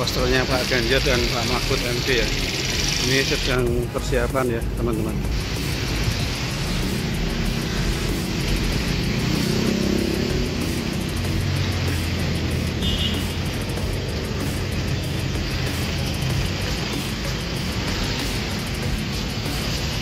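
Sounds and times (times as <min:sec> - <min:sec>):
motorcycles: 0:00.0 - 0:20.0
music playing: 0:00.0 - 0:20.0
street traffic: 0:00.0 - 0:20.0.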